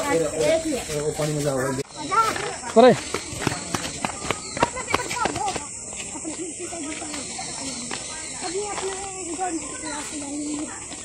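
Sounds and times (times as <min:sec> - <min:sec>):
boys talking: 0:00.0 - 0:11.0.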